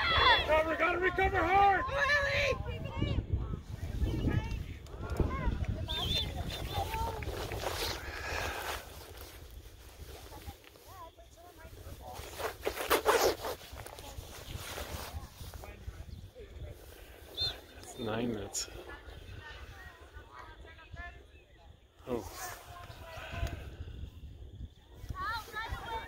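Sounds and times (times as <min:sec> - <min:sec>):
distant shouting voices: 0:00.0 - 0:03.3
wind rumbling on microphone: 0:00.0 - 0:26.0
rustle close to microphone: 0:03.6 - 0:20.5.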